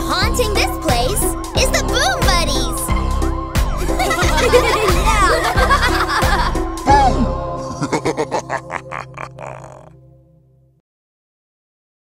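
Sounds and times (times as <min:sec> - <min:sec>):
cartoon ghost laughing: 0:03.9 - 0:09.9.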